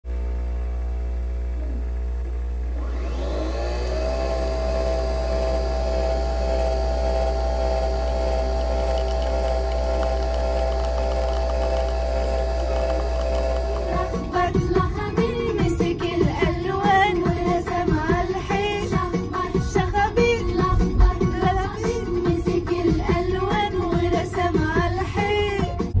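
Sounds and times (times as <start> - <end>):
coffee machine humming: 0.1 - 22.3.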